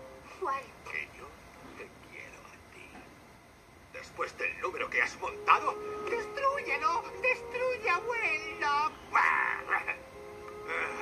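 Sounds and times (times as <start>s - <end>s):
sustained film music: 0.0s - 2.9s, 3.8s - 11.0s
wavering voice-like cry: 8.9s - 11.0s.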